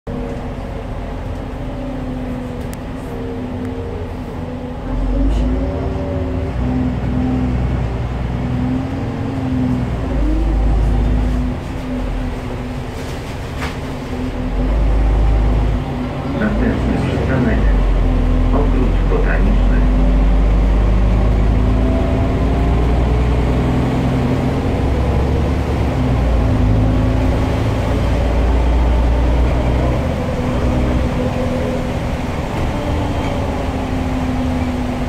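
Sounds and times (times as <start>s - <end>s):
bus diesel engine running: 0.1s - 35.0s
deep rumble: 0.1s - 35.0s.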